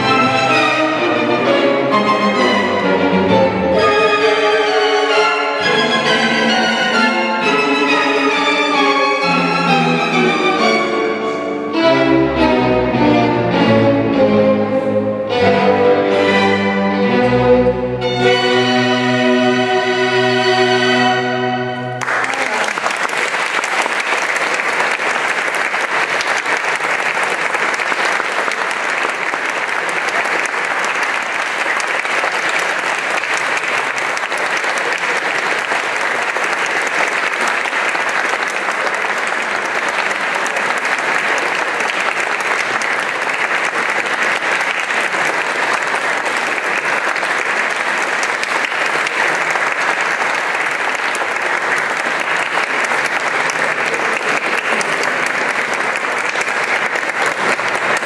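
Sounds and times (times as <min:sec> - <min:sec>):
audience applauding: 0:18.2 - 0:58.0.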